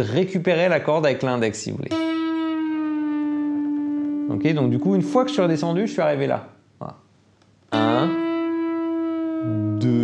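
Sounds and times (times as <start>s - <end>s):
electric guitar note bending down: 1.9s - 5.8s, 7.7s - 10.0s.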